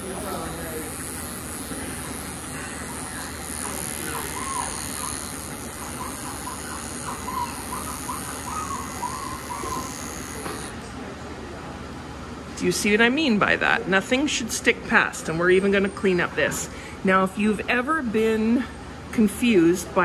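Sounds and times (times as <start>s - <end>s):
electric clipper running: 0.0s - 10.8s.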